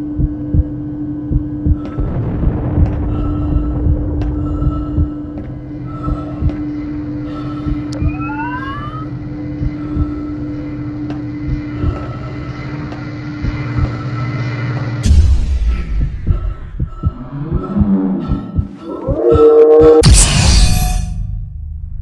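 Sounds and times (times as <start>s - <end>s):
electrical hum with throbbing pulses: 0.0s - 22.0s
heavy thuds: 1.4s - 7.0s
loud burst of noise: 1.9s - 5.8s
short rising whine: 7.9s - 9.4s.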